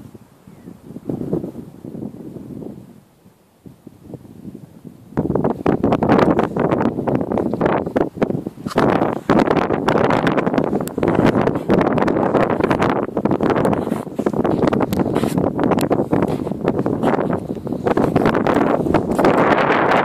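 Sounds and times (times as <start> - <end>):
wind buffeting microphone: 0.0 - 20.0
camera handling noise: 8.6 - 9.0.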